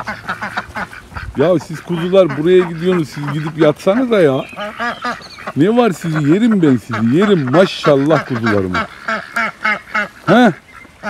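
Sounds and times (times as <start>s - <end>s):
ducks quacking: 0.0s - 11.0s.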